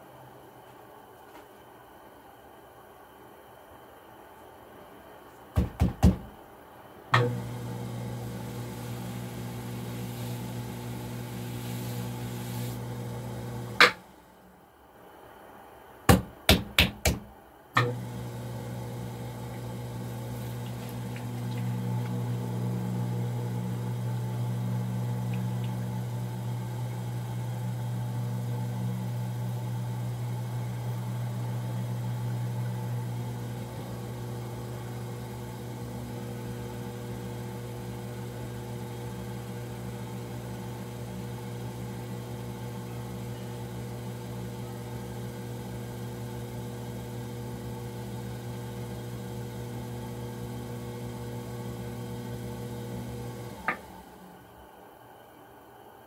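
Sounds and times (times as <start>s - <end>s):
potter's wheel motor humming: 7.2s - 14.1s, 17.8s - 54.5s.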